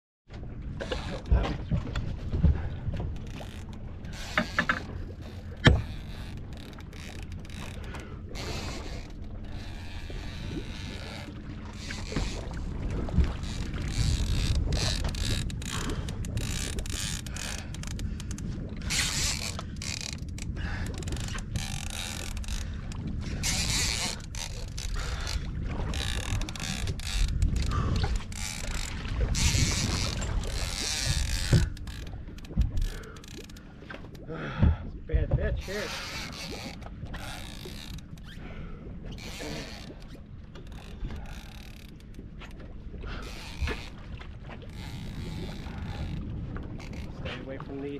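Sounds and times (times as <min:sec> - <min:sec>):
boat engine rumble: 0:00.3 - 0:47.9
fishing reel ratcheting: 0:03.2 - 0:12.4, 0:13.4 - 0:33.7, 0:35.6 - 0:38.4, 0:39.2 - 0:42.1, 0:44.7 - 0:46.2, 0:46.8 - 0:47.2.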